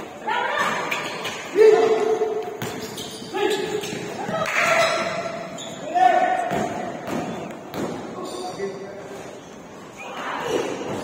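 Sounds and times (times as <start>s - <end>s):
basketball bouncing on court: 2.6s - 5.2s, 6.4s - 8.1s.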